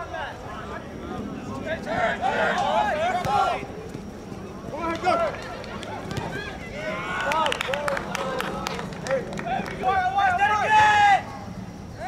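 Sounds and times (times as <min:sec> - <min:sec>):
voices shouting across a field: 0:00.0 - 0:12.0.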